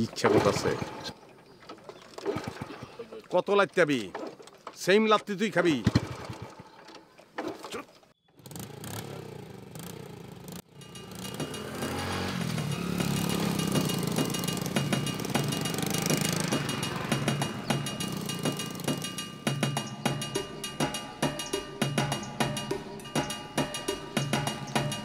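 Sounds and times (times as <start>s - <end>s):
small motorcycle engine: 8.2s - 20.3s
background music: 10.6s - 25.0s.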